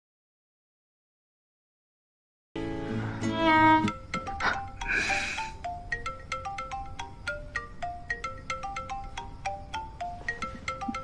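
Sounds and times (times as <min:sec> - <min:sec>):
marimba phone ringtone: 0:03.3 - 0:11.0.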